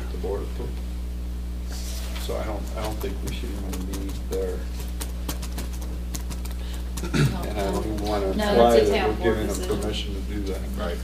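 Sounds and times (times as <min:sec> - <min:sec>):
low electrical hum: 0:00.0 - 0:11.0.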